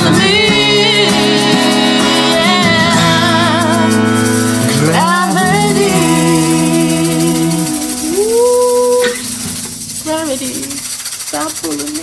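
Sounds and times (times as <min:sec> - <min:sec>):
woman singing: 0:00.0 - 0:09.3
acoustic guitar: 0:00.0 - 0:12.0.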